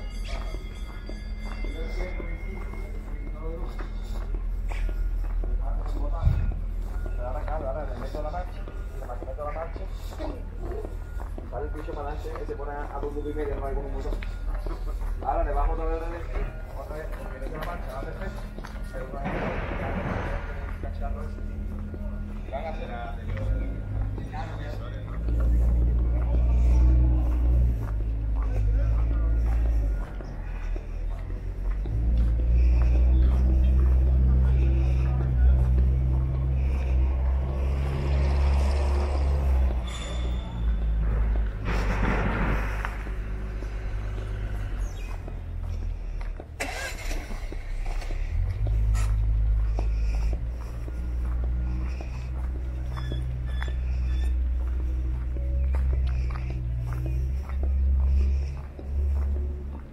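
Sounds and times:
faint voices: 0.0 - 59.9
heavy low rumble: 0.0 - 59.9.

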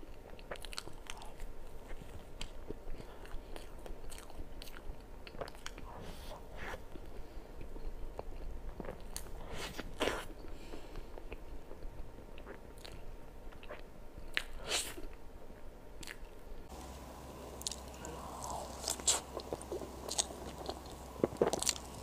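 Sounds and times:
chewing soft cake: 0.0 - 22.0
low steady hum: 0.0 - 22.0.

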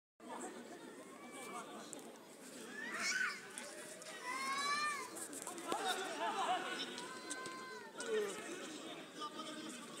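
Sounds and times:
faint chatter of voices: 0.2 - 10.0.

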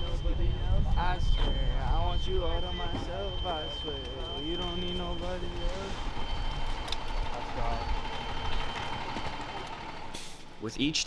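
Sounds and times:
thin high tone: 0.0 - 10.1
bus engine idling: 2.0 - 10.8.

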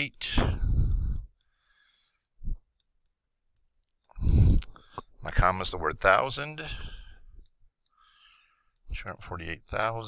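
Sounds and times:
breath: 0.4 - 2.6, 4.1 - 5.2, 6.7 - 8.8.

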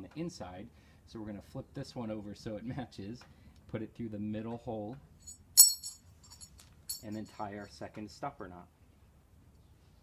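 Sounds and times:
metal plate and ring clinking: 5.2 - 7.4.

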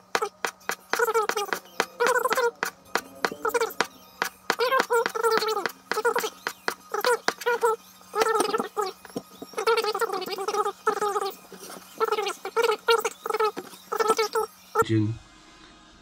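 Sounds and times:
garbled speech-like voice: 3.3 - 3.9, 4.5 - 9.0, 9.6 - 11.4, 12.0 - 14.9.

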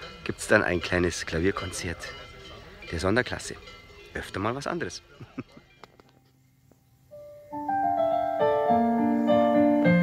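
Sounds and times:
digital piano chords: 7.1 - 10.0.

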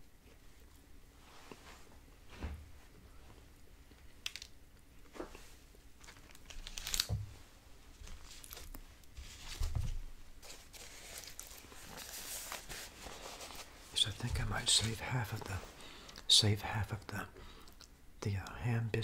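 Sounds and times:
paper wrapper crinkling: 6.0 - 7.2, 7.9 - 15.4.

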